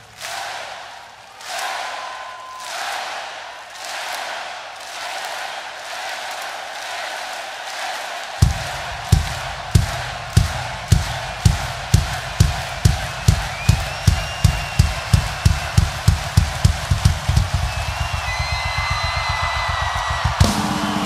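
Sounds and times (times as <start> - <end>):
crowd cheering and whistling: 0.8 - 4.1, 7.6 - 21.0
bass drum beat and roll: 8.4 - 21.0.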